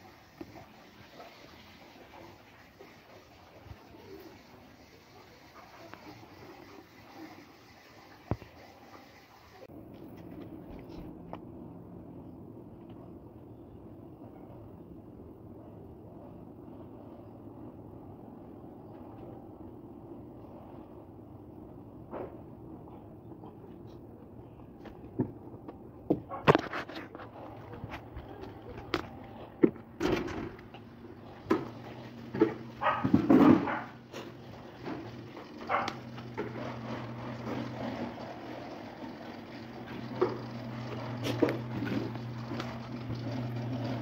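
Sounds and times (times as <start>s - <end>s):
objects knocking and clattering: 31.4s - 33.9s.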